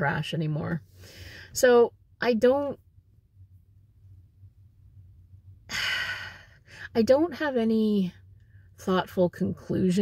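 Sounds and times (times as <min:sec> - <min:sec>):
woman breathing in: 0:01.0 - 0:01.6
woman sighing: 0:05.7 - 0:06.8.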